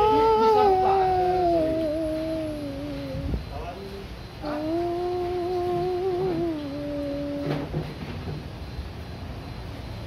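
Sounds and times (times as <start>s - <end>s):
man chanting call to prayer: 0.0s - 7.5s.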